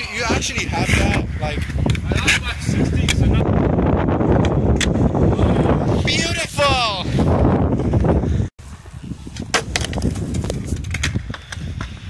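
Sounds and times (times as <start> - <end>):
skateboard wheels rolling on concrete: 0.0 - 12.0.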